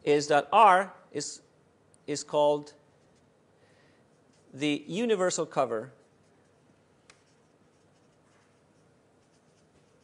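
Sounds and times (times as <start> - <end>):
writing on a board: 6.0 - 10.0.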